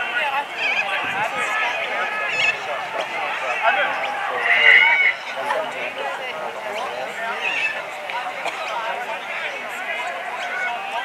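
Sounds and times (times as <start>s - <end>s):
voices shouting over one another: 0.0s - 11.0s.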